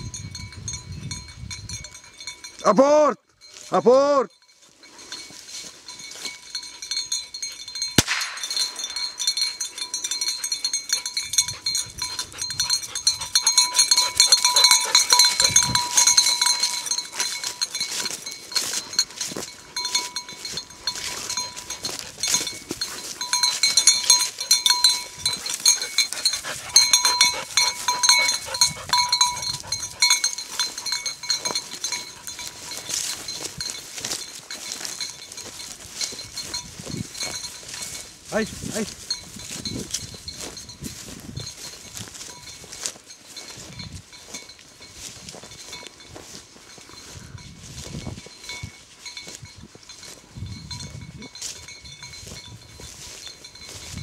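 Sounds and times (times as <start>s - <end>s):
small bell clinking rapidly: 0.0s - 54.0s.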